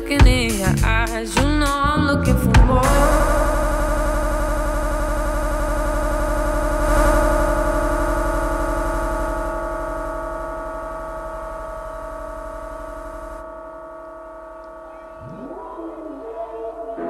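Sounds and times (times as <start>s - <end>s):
deep bass: 0.0s - 17.0s
held synthesizer chord: 2.8s - 17.0s
synth tone sweeping upward: 14.4s - 17.0s.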